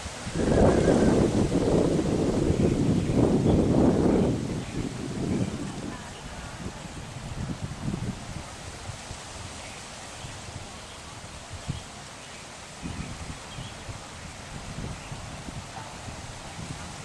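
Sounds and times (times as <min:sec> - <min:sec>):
wind buffeting microphone: 0:00.0 - 0:12.0, 0:12.7 - 0:17.0
rustling leaves: 0:00.0 - 0:17.0.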